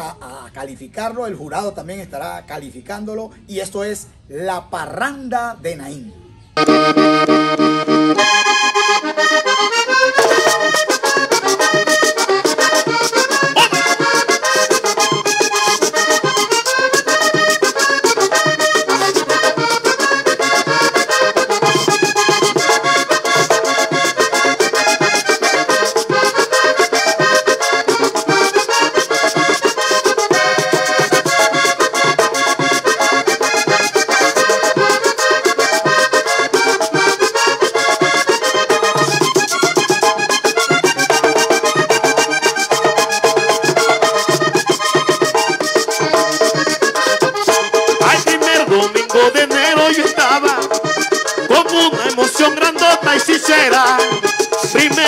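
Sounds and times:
button accordion playing fast: 6.6s - 55.0s
scraper rhythm: 6.6s - 55.0s
drum beat: 10.2s - 55.0s.

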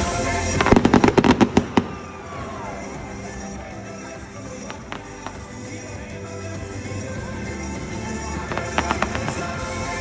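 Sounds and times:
fireworks bangs: 0.0s - 2.4s, 8.5s - 9.7s.

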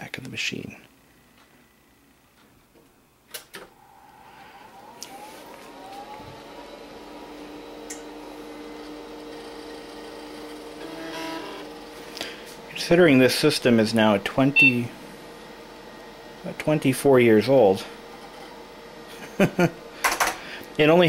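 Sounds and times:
hard drive spinning up: 3.7s - 16.4s.

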